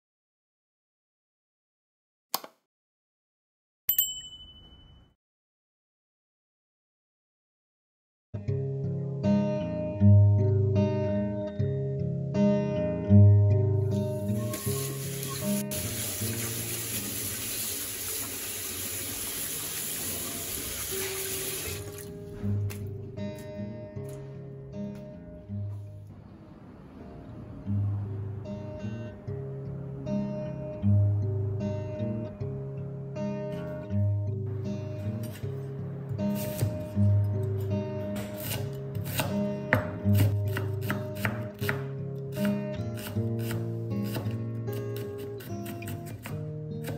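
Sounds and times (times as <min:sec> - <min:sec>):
background music: 0:08.6 - 0:46.9
hands washed under water: 0:14.5 - 0:22.8
tap water running into sink: 0:14.5 - 0:22.8.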